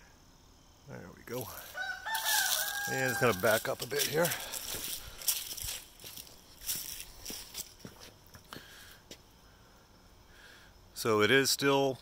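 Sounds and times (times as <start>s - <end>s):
footsteps on dry leaves: 1.3s - 8.7s.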